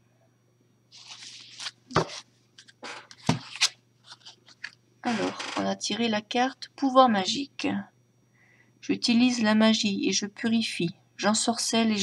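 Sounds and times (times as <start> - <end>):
paper cards rustling and sliding: 0.9 - 4.8.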